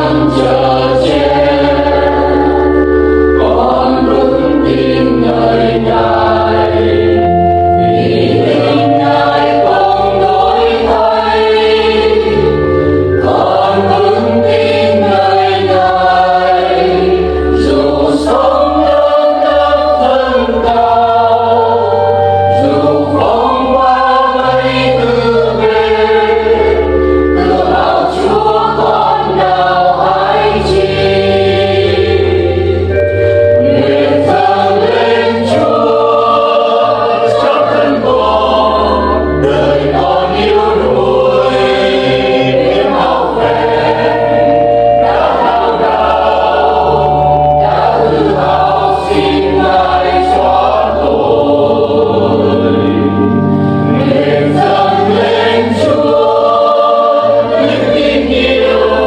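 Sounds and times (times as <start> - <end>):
accompaniment with bass notes: 0.0 - 59.0
choir singing a hymn: 0.0 - 59.0.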